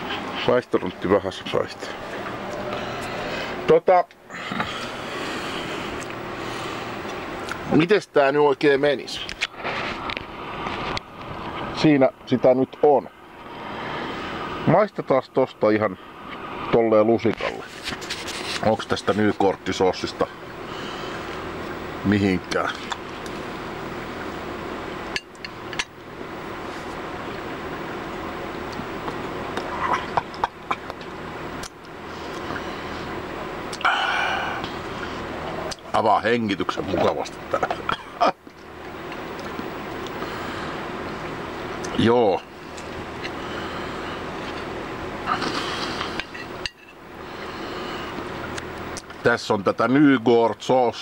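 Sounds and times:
steady background hum: 0.0 - 51.0.

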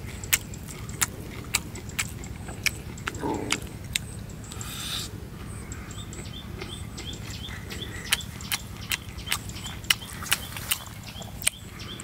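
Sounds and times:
crunchy chewing: 0.0 - 12.0.

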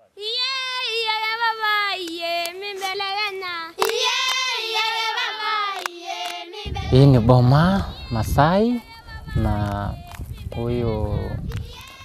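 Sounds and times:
women singing in unison: 0.1 - 12.0
low rumble: 6.7 - 11.5.

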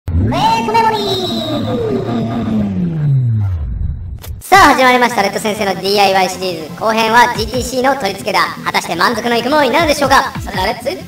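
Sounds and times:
engine revs dropping: 0.1 - 4.4.

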